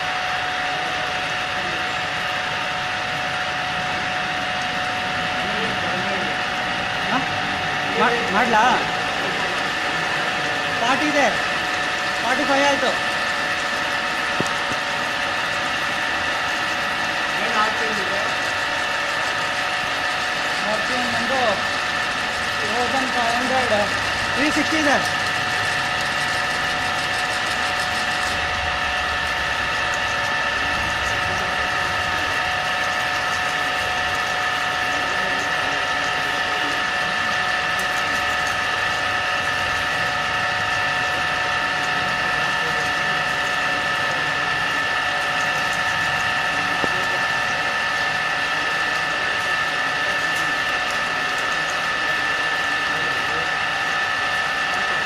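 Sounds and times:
drilling machine whine: 0.0 - 55.0.

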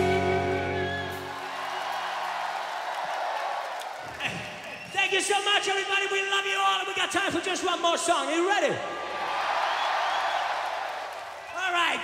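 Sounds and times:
crowd cheering: 0.0 - 6.1, 8.7 - 12.0.

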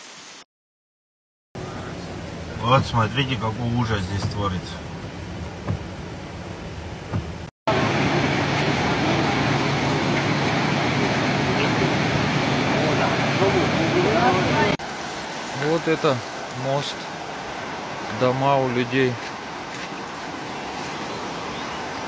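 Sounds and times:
rain: 0.0 - 0.4, 1.6 - 22.0
traffic: 1.6 - 22.0
loud steady rushing noise: 7.1 - 14.9
people's voices: 8.6 - 14.8.

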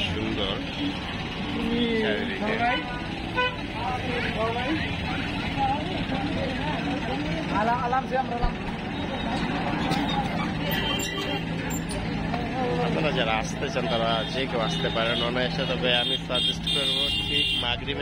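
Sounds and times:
people's voices: 0.0 - 18.0
road traffic: 0.0 - 18.0
vehicle horn toot: 3.4 - 3.6, 14.2 - 17.8.

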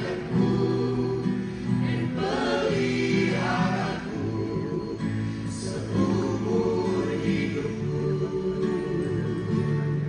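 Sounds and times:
group singing worship song: 0.0 - 10.0.

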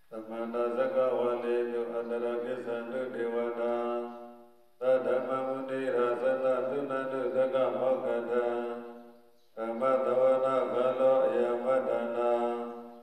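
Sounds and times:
man chanting into microphone: 0.0 - 13.0.

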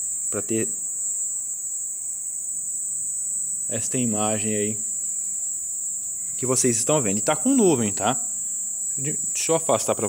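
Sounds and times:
night insects trilling: 0.0 - 10.0.

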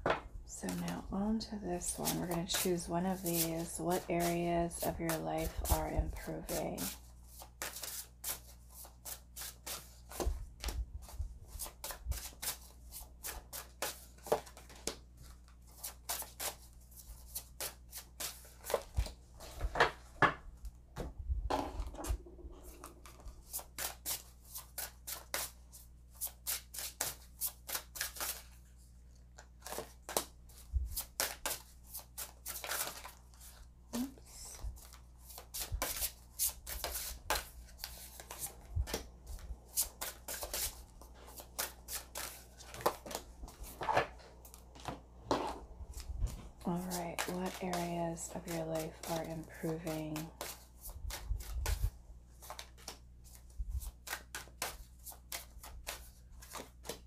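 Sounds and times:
cards shuffling and snapping: 5.1 - 10.8, 22.7 - 28.6, 29.3 - 30.4, 31.0 - 33.6, 34.8 - 44.9, 49.9 - 57.0.

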